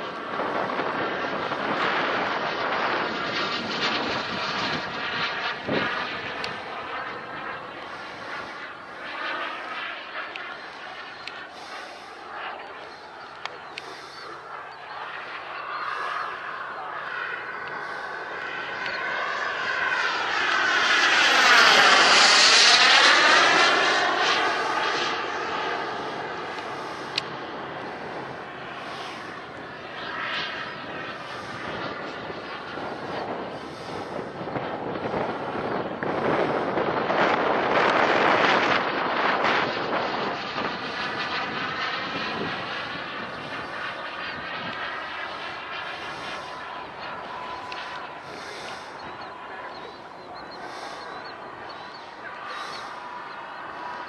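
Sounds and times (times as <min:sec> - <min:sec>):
model jet turbine whine: 0:00.0 - 0:54.0.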